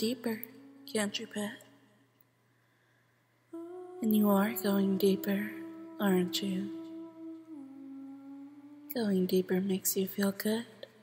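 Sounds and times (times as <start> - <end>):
ambient humming drone: 3.6 - 9.6.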